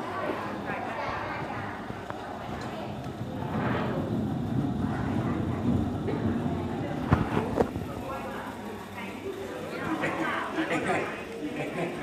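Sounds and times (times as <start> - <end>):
coffin rolling across wooden floor: 2.1 - 8.6.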